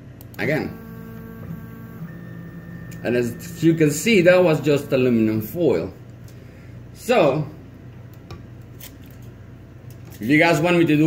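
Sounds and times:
stepper motors whining: 0.4 - 5.8.

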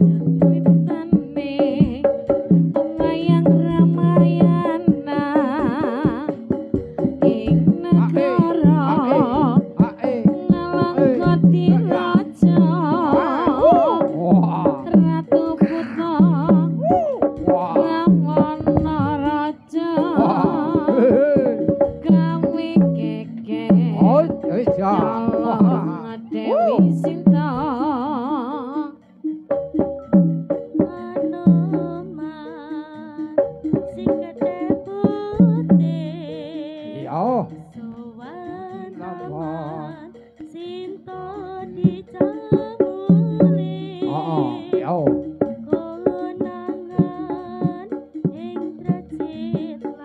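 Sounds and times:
drum strokes: 0.0 - 50.0
steady held tones: 0.0 - 50.0
wavering melody: 0.0 - 50.0.

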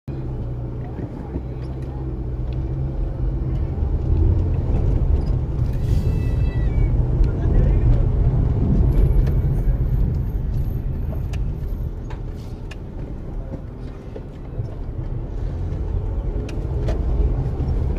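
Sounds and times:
car engine and tyres rumbling: 0.1 - 17.9.

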